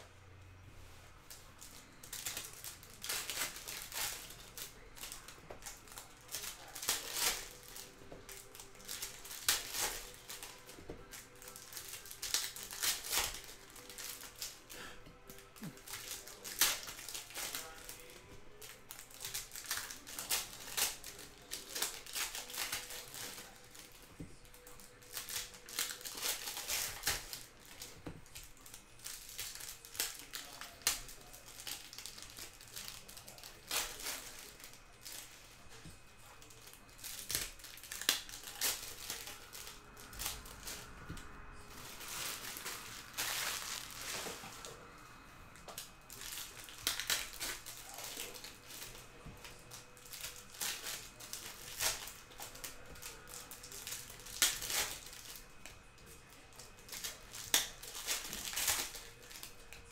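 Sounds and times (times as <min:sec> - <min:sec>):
foil wrappers crinkling and tearing: 0:01.2 - 0:59.9.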